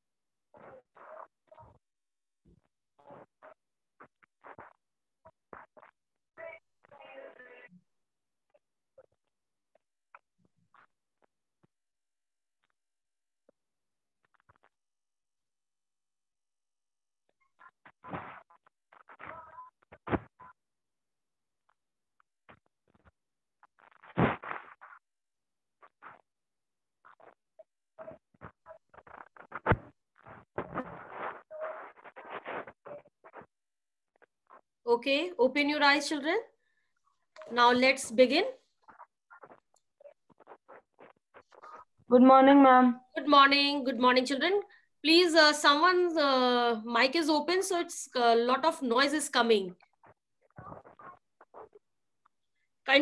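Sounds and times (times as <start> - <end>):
microphone clicks and rustles: 17.5 - 20.6, 22.5 - 25.0, 28.0 - 33.6, 37.4 - 42.1, 49.0 - 52.4.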